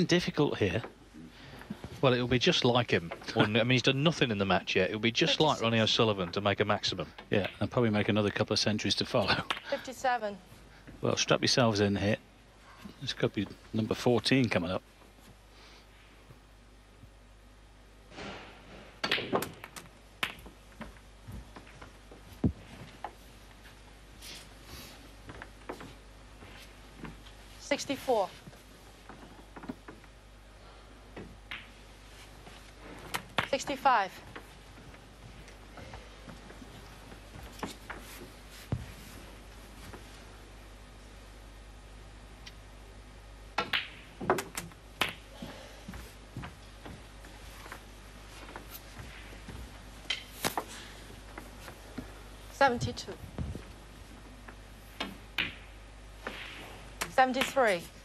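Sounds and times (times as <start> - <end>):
snooker balls clicking together: 19.0 - 21.8, 48.5 - 50.7
snooker balls clicking: 19.0 - 23.2, 43.6 - 45.3, 46.4 - 52.1, 54.4 - 57.7.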